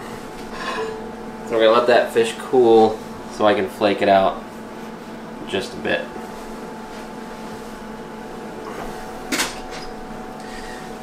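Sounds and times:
kitchen appliances humming: 0.0s - 11.0s.

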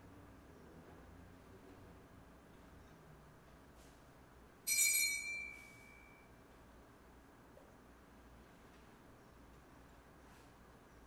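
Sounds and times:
bell-like metallic strike: 4.7s - 6.3s.

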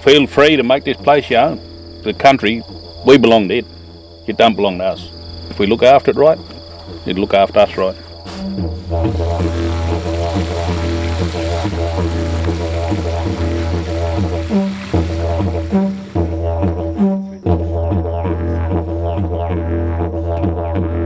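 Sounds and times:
didgeridoo drone: 0.6s - 21.0s.

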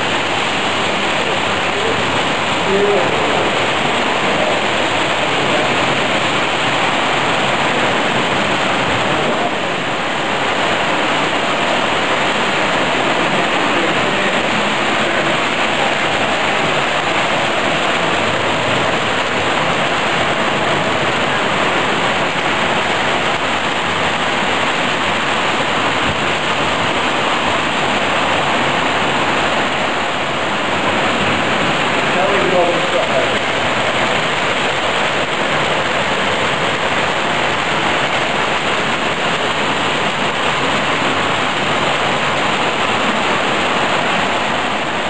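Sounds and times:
exhibition hall background: 0.0s - 23.5s, 27.2s - 37.6s.

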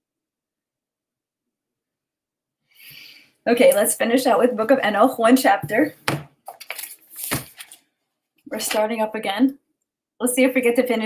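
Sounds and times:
paper rustling and flapping: 6.1s - 7.9s
paper crackles: 6.5s - 7.9s.

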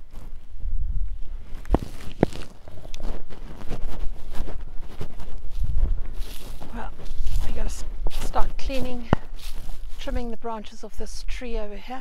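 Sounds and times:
wind buffeting microphone: 0.0s - 10.5s
footsteps on grass: 0.0s - 12.0s.

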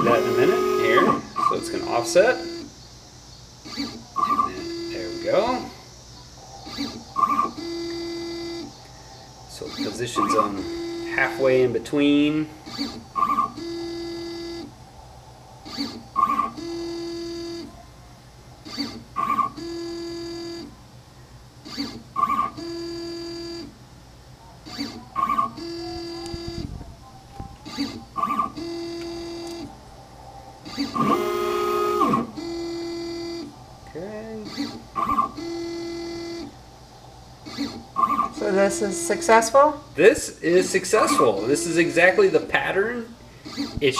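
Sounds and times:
stepper motors whining: 0.0s - 14.8s, 15.6s - 17.8s, 18.5s - 20.8s, 21.6s - 23.8s, 24.6s - 43.9s.

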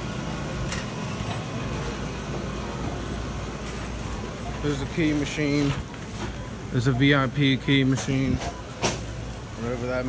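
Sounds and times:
crowded store rumble and hum: 0.0s - 10.0s.

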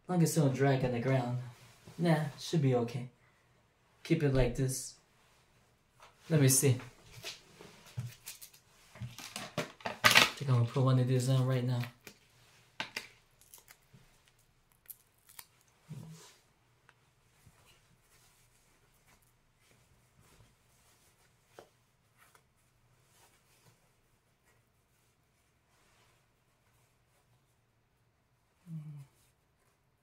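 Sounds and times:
velcro clicks and crackles: 8.1s - 10.4s, 12.9s - 15.8s
fabric rustling: 15.7s - 27.9s.

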